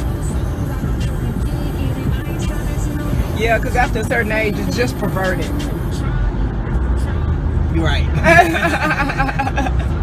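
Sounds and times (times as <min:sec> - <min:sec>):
car road and engine rumble: 0:00.0 - 0:10.0
music playing: 0:00.0 - 0:10.0.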